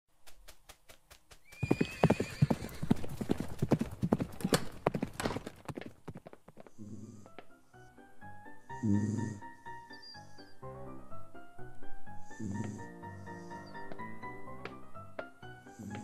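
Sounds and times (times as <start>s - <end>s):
hooves clattering fast: 0.1s - 6.8s
donkey hooves clip-clopping: 0.2s - 7.5s.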